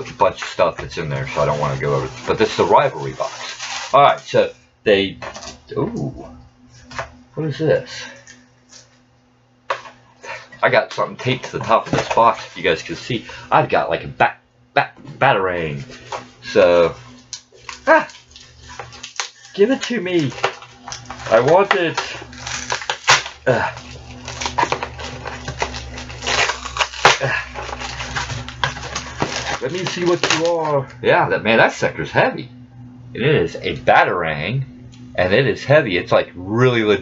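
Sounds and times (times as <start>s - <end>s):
cardboard rustle: 0.0s - 4.2s, 15.8s - 30.8s
tape and packaging crackling: 0.0s - 7.2s, 9.7s - 13.7s, 15.7s - 31.8s
faint low hum: 0.0s - 37.0s.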